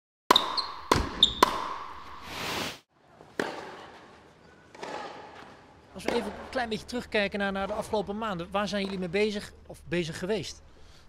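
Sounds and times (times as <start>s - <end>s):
ball bouncing: 0.3s - 2.2s.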